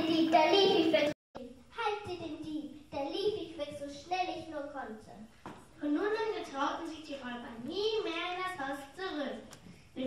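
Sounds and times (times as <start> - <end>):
children speaking: 0.0 - 1.2, 5.8 - 9.4.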